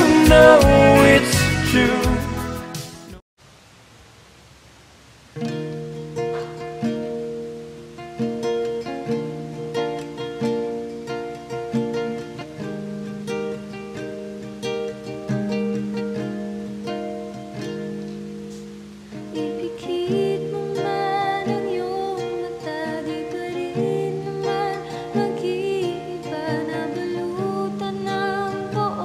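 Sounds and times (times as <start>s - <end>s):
acoustic guitar picking: 0.0s - 3.2s, 5.4s - 29.0s.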